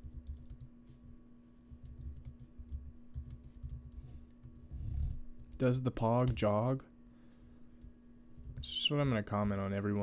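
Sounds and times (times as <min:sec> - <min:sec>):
laptop keyboard typing: 0:00.0 - 0:00.7, 0:01.7 - 0:05.1.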